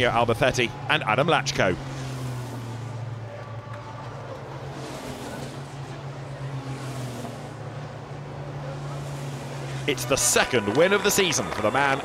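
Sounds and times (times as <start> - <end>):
race trucks passing: 0.0 - 12.0.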